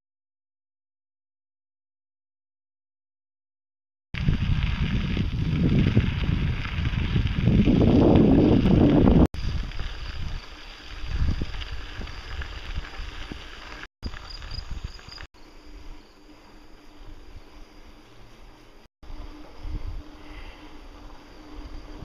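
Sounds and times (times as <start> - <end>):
wind buffeting microphone: 4.2 - 13.6
bicycle rolling on gravel: 4.2 - 22.0.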